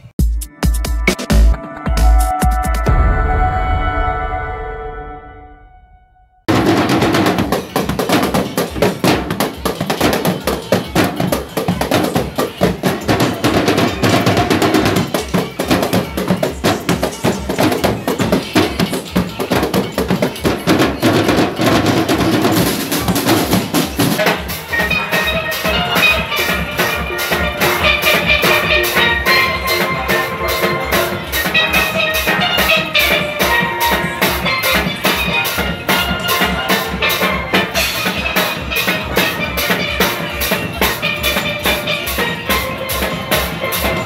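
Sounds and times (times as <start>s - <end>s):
music sting: 0.5s - 7.0s
drum corps playing fast beat: 6.5s - 44.0s.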